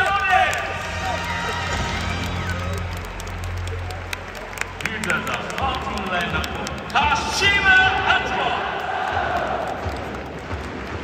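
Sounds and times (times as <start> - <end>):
large crowd noise: 0.0 - 11.0.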